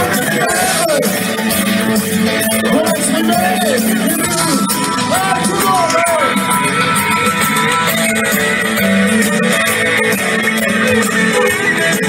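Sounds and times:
electric guitar: 0:00.0 - 0:12.0
live soul band playing: 0:00.0 - 0:12.0.

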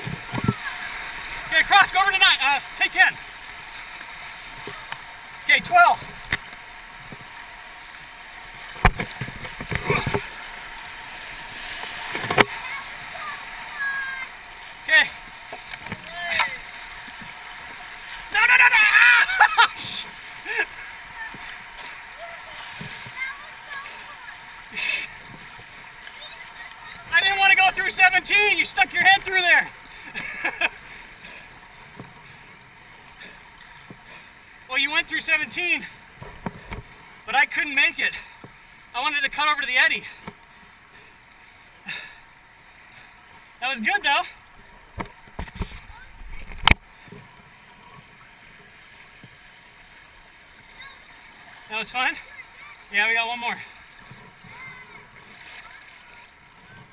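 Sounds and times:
whitewater rapids rushing: 0:00.0 - 0:36.1, 0:41.8 - 0:44.9, 0:47.6 - 0:56.9.

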